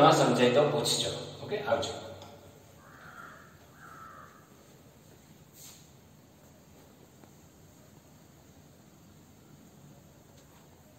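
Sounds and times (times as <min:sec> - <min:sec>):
faint bird calls: 0:02.7 - 0:04.7.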